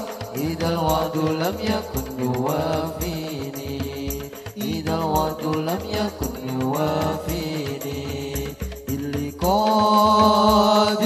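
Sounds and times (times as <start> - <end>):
frame drums beating: 0.0 - 10.9
men singing together: 0.0 - 11.0.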